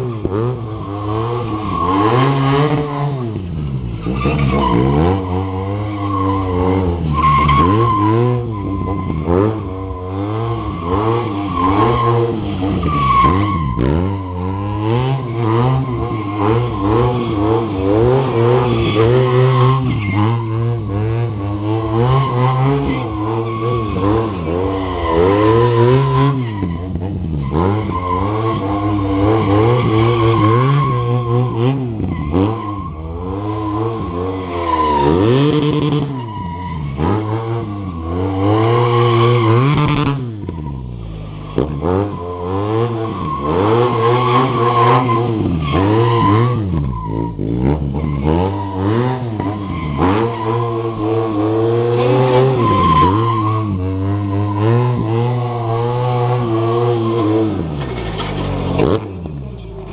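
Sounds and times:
motorcycle engine revving: 0.0s - 59.9s
tyre squealing on asphalt: 0.0s - 59.9s.

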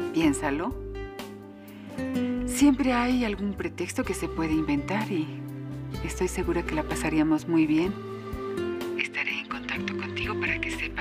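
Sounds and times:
sustained background music: 0.0s - 11.0s.

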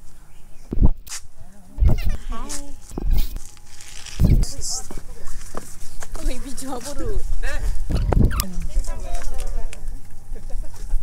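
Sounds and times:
woman laughing: 1.8s - 2.5s.

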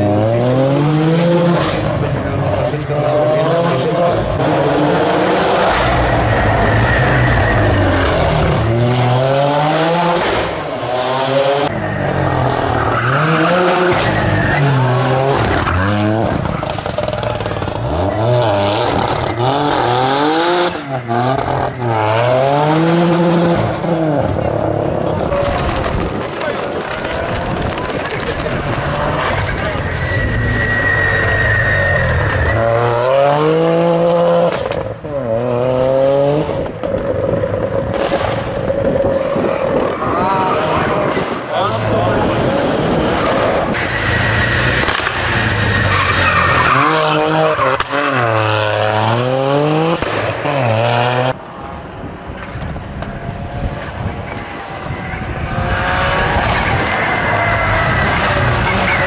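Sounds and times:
rally car engine revving: 0.0s - 51.5s, 52.4s - 59.0s.

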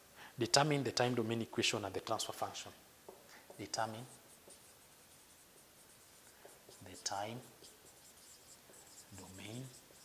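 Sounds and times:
marker pen writing on whiteboard: 3.1s - 10.0s.

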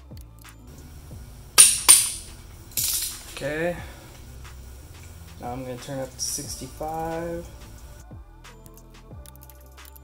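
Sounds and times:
background music with low tones: 0.0s - 10.0s.

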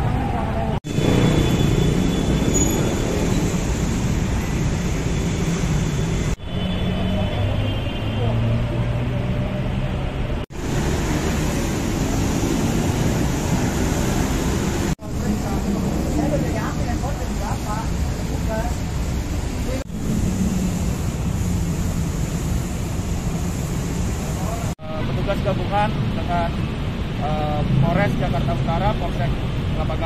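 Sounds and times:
road traffic: 0.0s - 30.0s.

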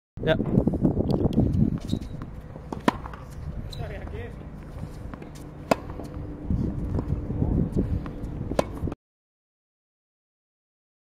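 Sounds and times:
tennis racket hitting ball: 1.8s - 7.1s, 8.0s - 8.9s.

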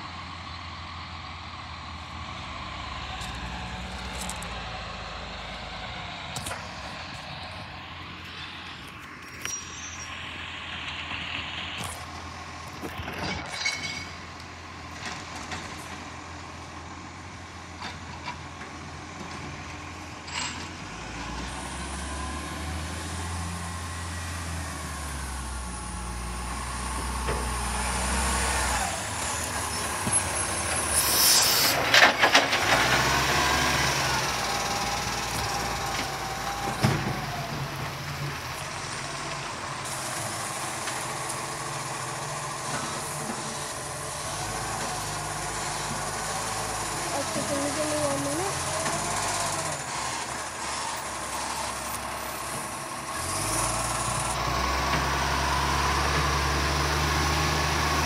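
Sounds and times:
garbage truck diesel engine: 0.0s - 58.0s.

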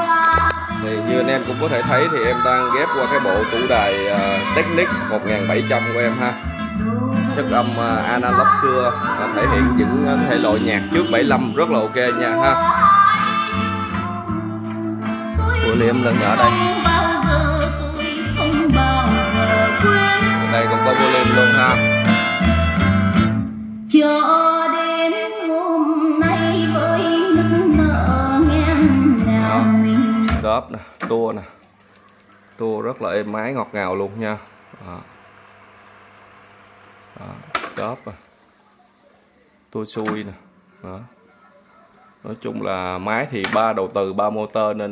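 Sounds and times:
old song with singing and guitar: 0.0s - 30.6s
tape deck whirring in fast wind: 34.6s - 38.7s
tape deck click: 34.7s - 38.5s, 39.9s - 40.5s, 43.3s - 44.6s.

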